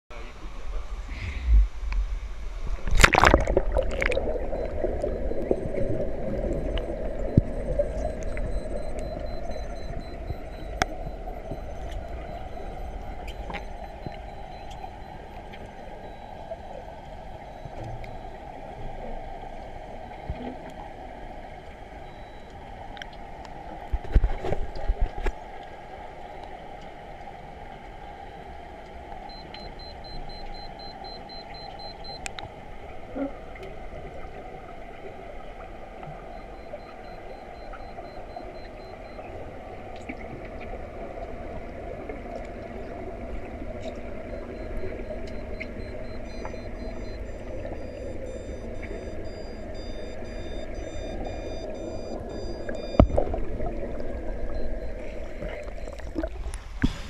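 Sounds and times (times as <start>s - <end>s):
muffled underwater rush: 0.1s - 57.0s.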